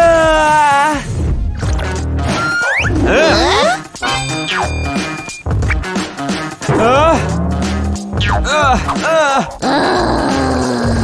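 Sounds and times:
background music: 0.0s - 11.0s
cartoon character vocal sounds: 3.0s - 3.8s, 6.7s - 11.0s.

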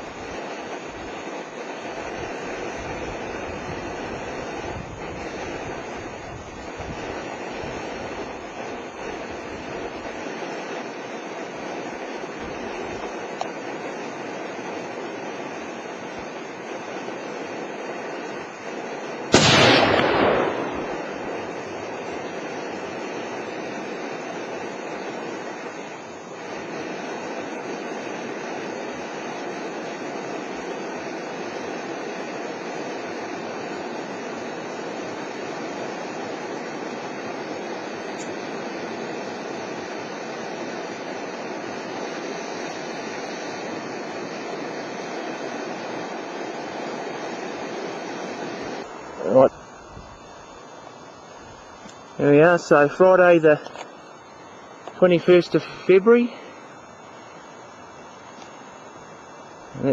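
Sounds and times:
steady rushing background noise: 0.0s - 59.9s
rifle shot with echo: 19.3s - 22.2s.

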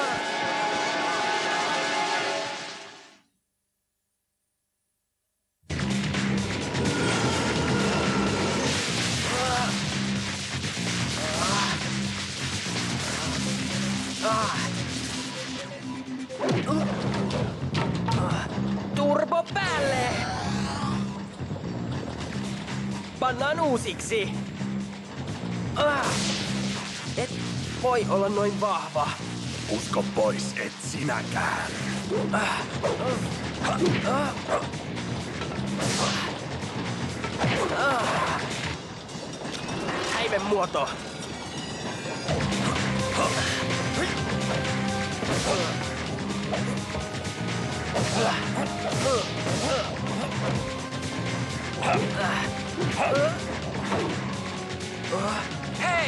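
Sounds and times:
action cartoon music: 0.0s - 3.2s, 5.7s - 56.0s
impact crash sound effects: 6.4s - 15.6s
short vocal grunt: 48.0s - 50.6s.

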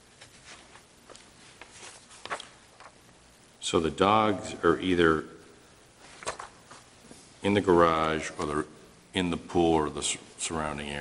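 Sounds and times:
papers rustling on wooden podium: 0.2s - 3.0s, 6.0s - 7.2s.

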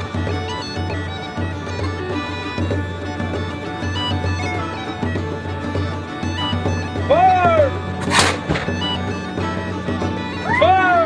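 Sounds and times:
bagpipe music: 0.0s - 11.0s.

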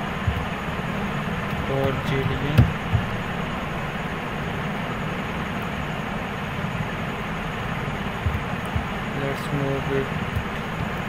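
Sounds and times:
faint low knocks: 0.0s - 0.5s, 1.5s - 3.3s, 8.2s - 9.0s.

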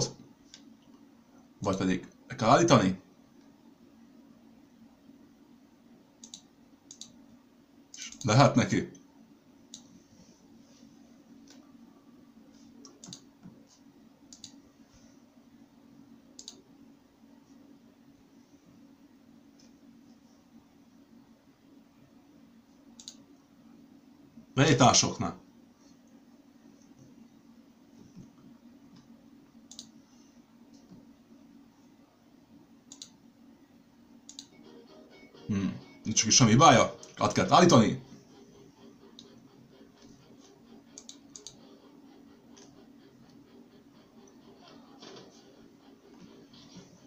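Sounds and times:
low steady hum: 0.0s - 47.0s
computer mouse clicks: 6.2s - 7.2s, 7.9s - 8.4s, 9.7s - 9.9s, 12.8s - 14.6s, 16.4s - 16.6s, 23.0s - 23.2s, 28.1s - 30.0s, 32.8s - 33.2s, 34.2s - 34.5s, 40.9s - 41.7s, 42.5s - 43.4s.

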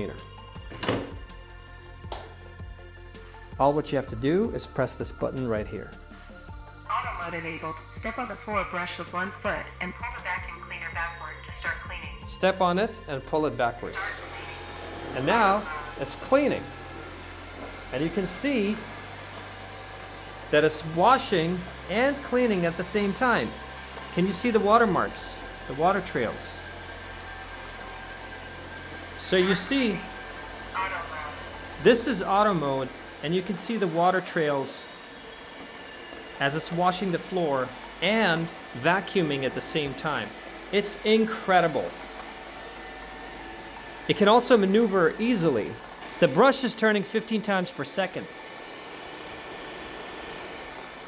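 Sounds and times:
wet-dry vacuum whirring: 12.4s - 51.0s.

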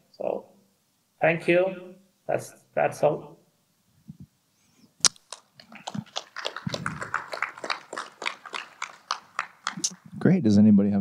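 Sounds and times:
sparse audience clapping: 5.2s - 10.2s.

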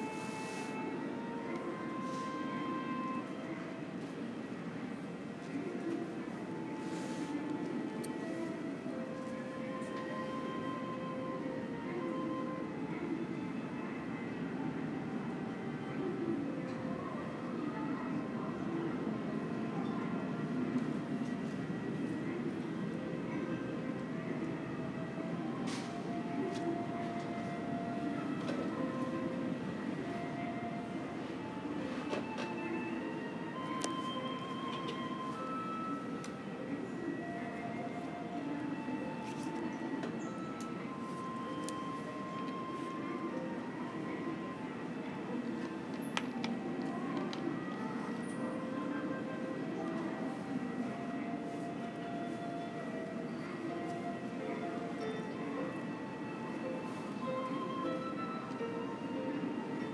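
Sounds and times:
faint background music: 0.0s - 59.9s
low rumble of terminal ambience: 0.0s - 59.9s.

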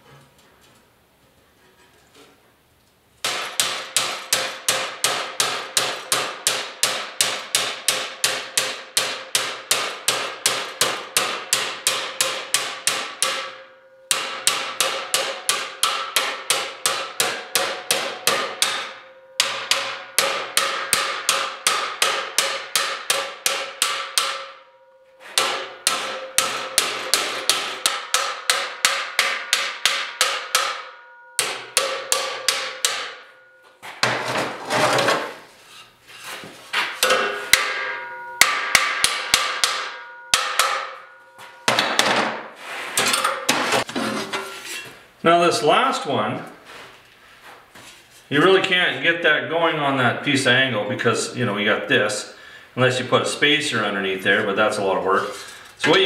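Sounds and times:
hammer striking steel plate: 3.2s - 34.3s, 36.8s - 44.6s
metal plate ringing: 10.8s - 33.8s, 37.0s - 42.4s.

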